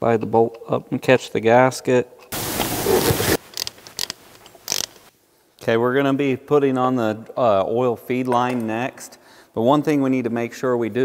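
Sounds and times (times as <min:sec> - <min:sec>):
metal parts scraping: 0:02.9 - 0:05.1
small metallic clicks: 0:03.5 - 0:05.1.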